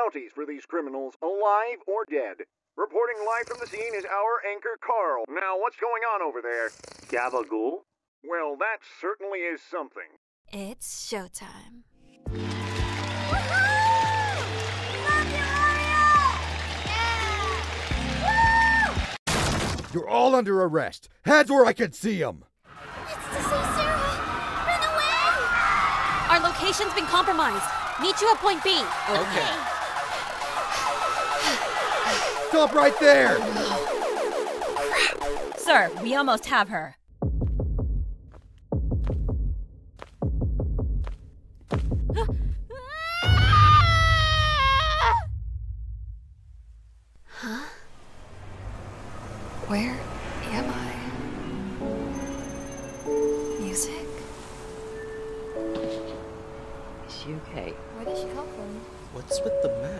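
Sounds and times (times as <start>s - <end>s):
high long-held scream: 12.4s - 14.5s, 18.2s - 19.0s, 42.9s - 45.3s
person cheering woo: 12.4s - 19.1s, 26.9s - 29.8s
shattering crash sound effect: 19.3s - 19.9s.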